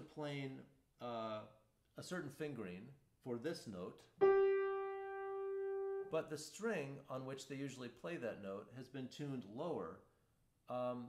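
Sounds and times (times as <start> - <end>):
grand piano note ringing: 4.2 - 6.2.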